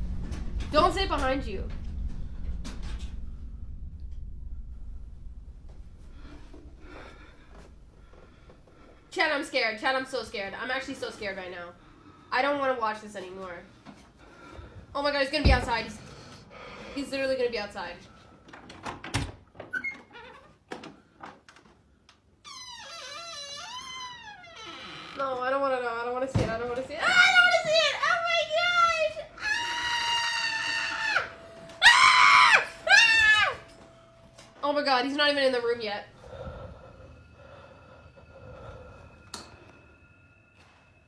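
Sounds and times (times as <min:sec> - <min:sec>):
faint hum with high tone: 0:28.0 - 0:41.0.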